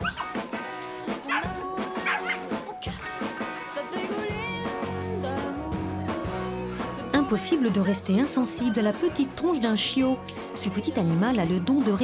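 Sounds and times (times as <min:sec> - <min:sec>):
puppy yipping: 0:01.3 - 0:02.4.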